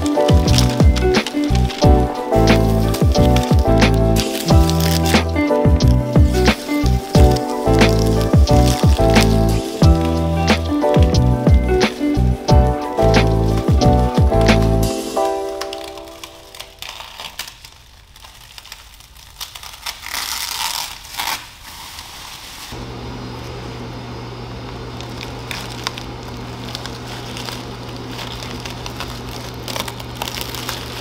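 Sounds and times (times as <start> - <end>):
steady low hum: 0.0 - 15.0
plastic sheeting crinkling: 0.0 - 22.8, 24.9 - 31.0.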